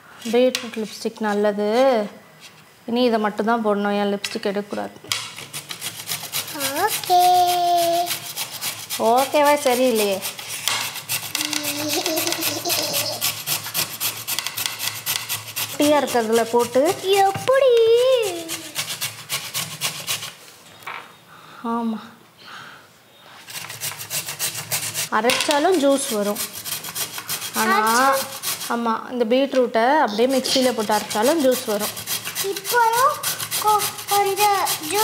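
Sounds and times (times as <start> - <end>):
scraping strokes: 5.3 - 20.5, 23.3 - 28.9, 30.2 - 35.0
beetroot grated on metal grater: 5.4 - 20.4, 23.5 - 28.9, 30.2 - 35.0.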